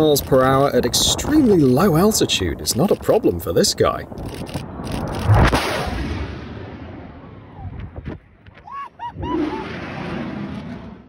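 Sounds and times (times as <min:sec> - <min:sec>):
jet aircraft roar: 0:09.0 - 0:11.0.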